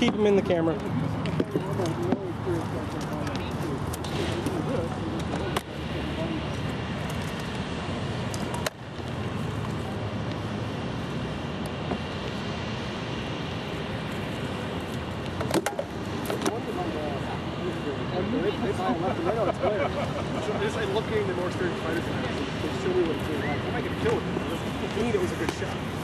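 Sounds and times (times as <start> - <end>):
background rumble and hiss: 0.0 - 26.0.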